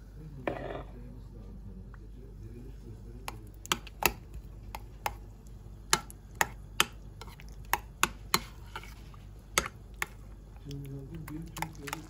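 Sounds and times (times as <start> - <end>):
spoon stirring thick mixture: 2.4 - 12.0.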